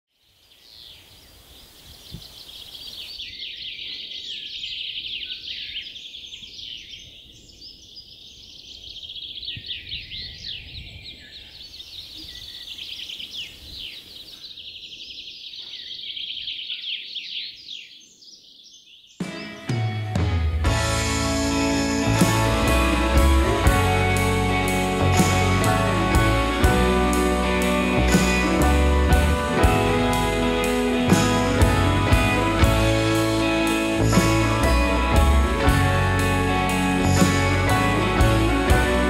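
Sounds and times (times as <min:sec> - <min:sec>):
songbirds chirping and trilling: 0:00.1 - 0:20.9
guitar music: 0:19.2 - 0:39.0.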